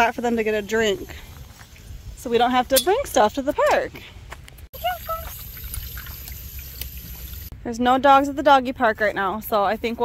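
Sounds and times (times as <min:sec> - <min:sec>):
water trickling into metal bowl: 0:04.8 - 0:07.5.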